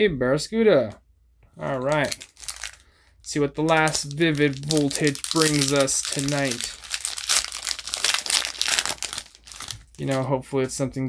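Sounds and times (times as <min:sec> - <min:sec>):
foil wrapper tearing and crinkling: 0:01.9 - 0:02.9, 0:03.6 - 0:10.2.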